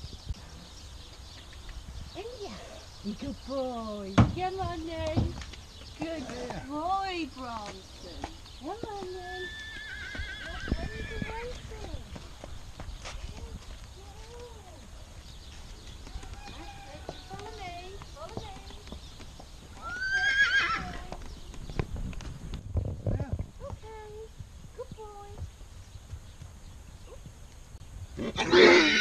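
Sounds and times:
hooves on dirt: 0.0 - 28.3
horse whinnying: 9.3 - 11.4, 19.8 - 21.1, 28.2 - 29.0.

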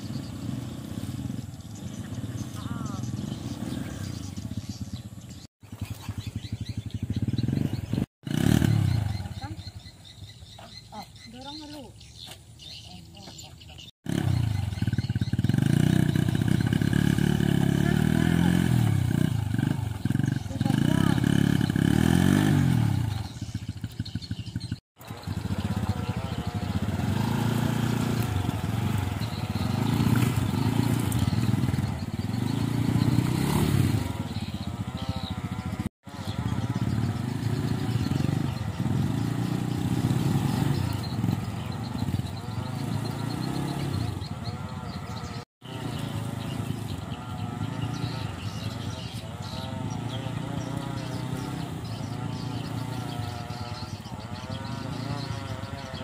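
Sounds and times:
small motorcycle engines revving: 0.0 - 56.0.

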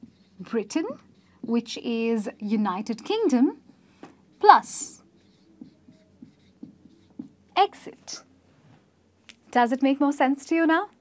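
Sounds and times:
marker pen writing on whiteboard: 0.0 - 8.2.

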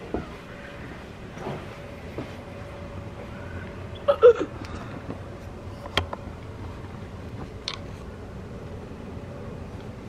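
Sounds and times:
air conditioner humming: 0.0 - 10.0
faint thin whine: 0.0 - 10.0.

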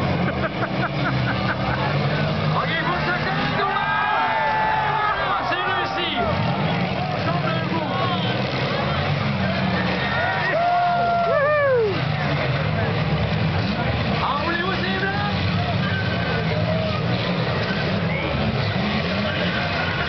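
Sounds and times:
car engines revving: 0.0 - 20.0
crowd voices and shouts: 0.0 - 20.0.

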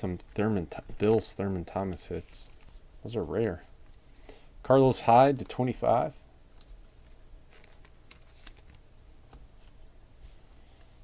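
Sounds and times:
trading cards rustling and sliding: 1.9 - 2.8, 6.6 - 11.0.

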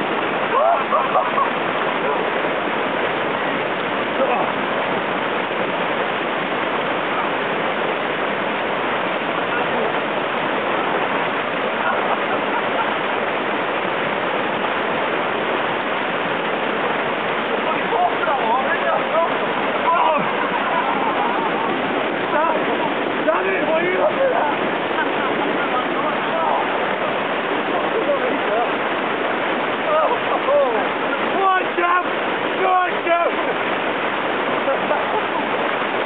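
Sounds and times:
stream rushing over rocks: 0.0 - 36.0.

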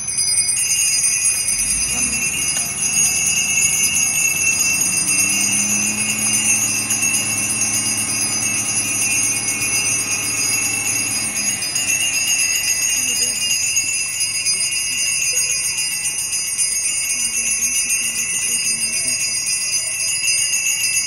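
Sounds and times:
hand bells jingling: 0.0 - 21.0.

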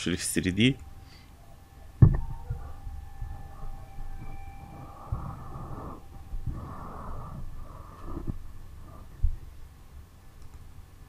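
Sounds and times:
faint electronic hum: 0.0 - 11.0
person breathing close to microphone: 1.0 - 1.4, 3.6 - 9.6
dull low thumps: 1.8 - 9.8.

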